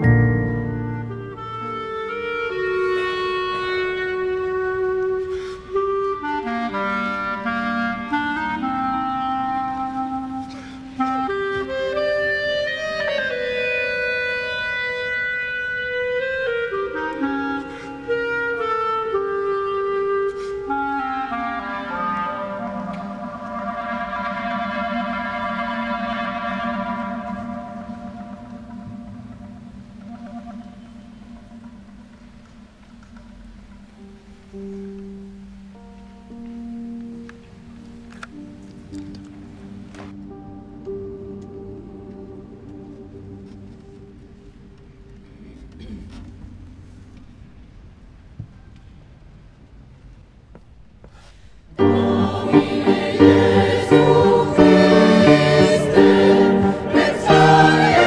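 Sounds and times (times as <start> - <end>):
solo clarinet melody: 0.0 - 45.2, 51.8 - 58.0.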